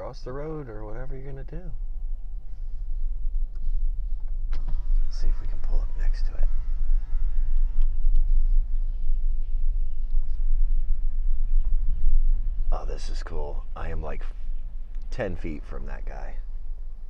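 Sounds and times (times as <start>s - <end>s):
car cabin rumble: 3.4s - 10.5s
faint voices: 4.7s - 7.5s, 12.7s - 14.3s.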